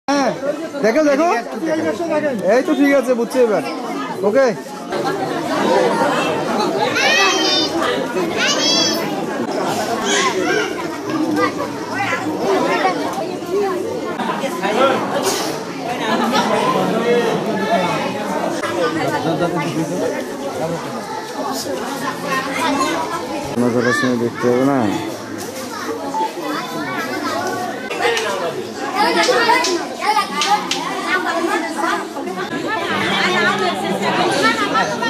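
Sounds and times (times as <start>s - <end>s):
crowd talking: 0.0s - 35.0s.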